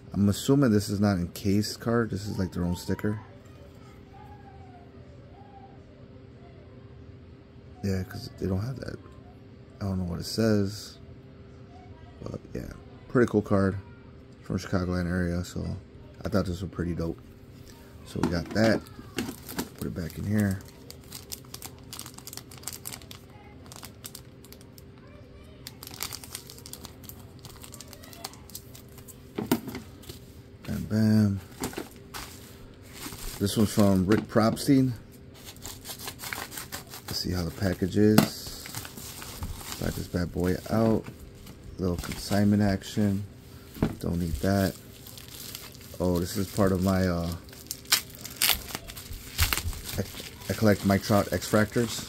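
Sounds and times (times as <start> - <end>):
bubble wrap crackles: 18.0 - 29.2, 31.4 - 34.1, 35.3 - 52.0
plastic bag crinkling: 18.1 - 30.0, 31.4 - 34.8, 35.4 - 52.0.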